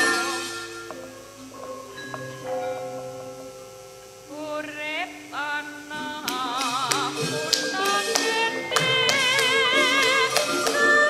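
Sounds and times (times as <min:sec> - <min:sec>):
gamelan music: 0:00.0 - 0:04.4, 0:05.2 - 0:11.0
sharp percussive taps: 0:06.2 - 0:11.0.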